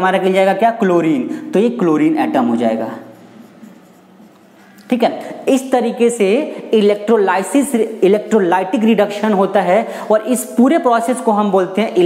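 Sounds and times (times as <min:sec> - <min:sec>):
marker pen on whiteboard: 0:02.0 - 0:05.0.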